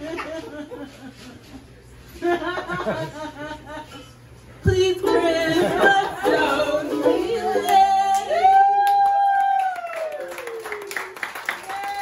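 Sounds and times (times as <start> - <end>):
woman singing: 4.6 - 9.6
ukulele: 4.7 - 8.9.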